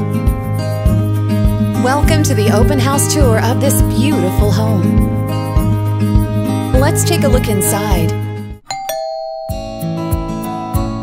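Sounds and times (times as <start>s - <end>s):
acoustic guitar music: 0.0s - 8.6s, 9.3s - 11.0s
background music: 0.0s - 11.0s
two-note doorbell chime: 8.7s - 10.7s.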